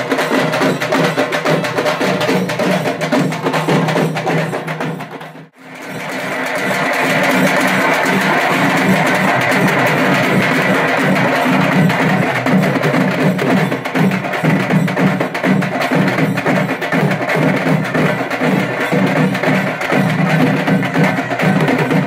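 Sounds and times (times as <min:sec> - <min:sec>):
temple drums beaten with sticks: 0:00.0 - 0:22.0.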